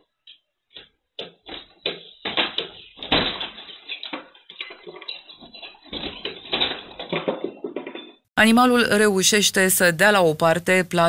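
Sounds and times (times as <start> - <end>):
wooden door knocking and rattling: 1.2 - 8.2.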